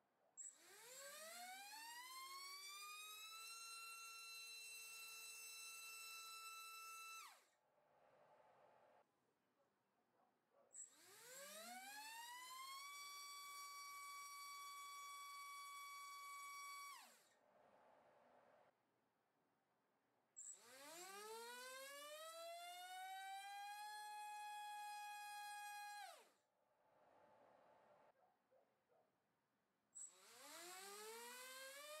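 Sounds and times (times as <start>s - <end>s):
electric motor propeller whine: 11.0s - 17.2s, 20.6s - 26.2s, 30.1s - 32.0s.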